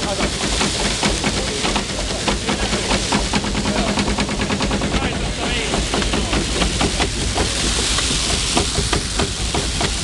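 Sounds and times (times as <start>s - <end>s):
threshing machine rattling: 0.0s - 10.0s.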